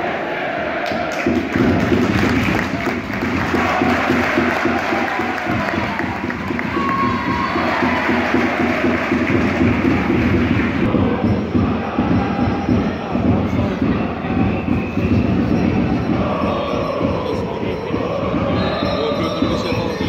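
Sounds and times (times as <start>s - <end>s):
crowd cheering and shouting: 0.0s - 20.0s.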